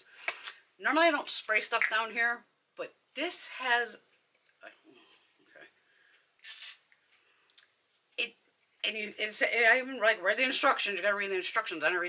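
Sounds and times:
spray bottle hiss: 0:06.4 - 0:06.8.

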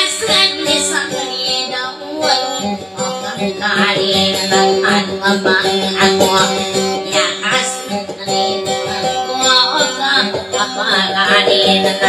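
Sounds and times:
high voice singing: 0:00.0 - 0:12.0
plucked guitar: 0:00.0 - 0:12.0.

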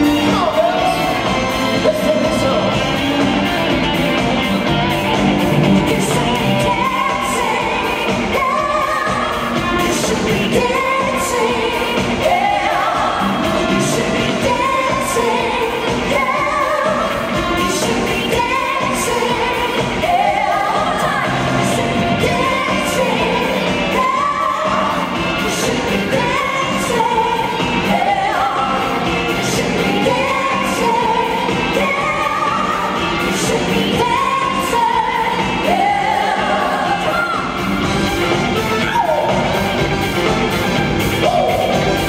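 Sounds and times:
live pop song over loudspeakers: 0:00.0 - 0:42.0.

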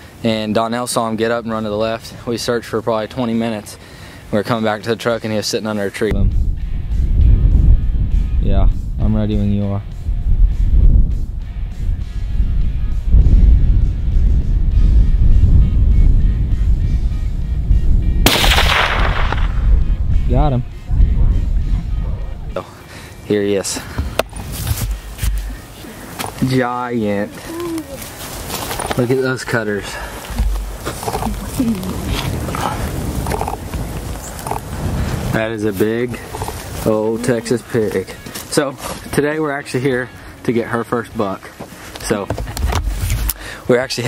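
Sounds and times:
low steady rumble: 0:06.1 - 0:22.6
wind buffeting microphone: 0:06.1 - 0:22.6, 0:23.7 - 0:38.2
rifle shot: 0:18.2 - 0:19.9
faint voices: 0:25.4 - 0:34.6, 0:35.4 - 0:39.8.

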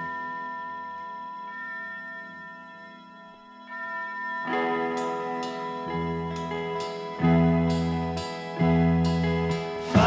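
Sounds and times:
rock music held chord: 0:04.5 - 0:10.0.

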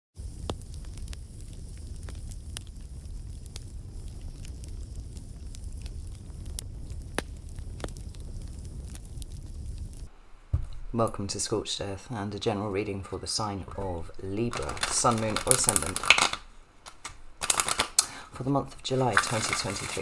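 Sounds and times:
fire crackles and pops: 0:00.1 - 0:11.6, 0:12.3 - 0:20.0
rumble of flames: 0:00.2 - 0:10.1, 0:13.7 - 0:16.4, 0:18.7 - 0:20.0.

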